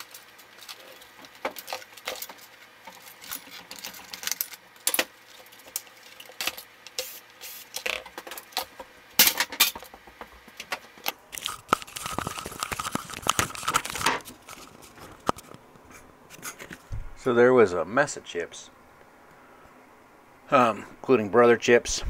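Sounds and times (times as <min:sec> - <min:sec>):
plastic and metal parts clattering: 0:00.0 - 0:15.6.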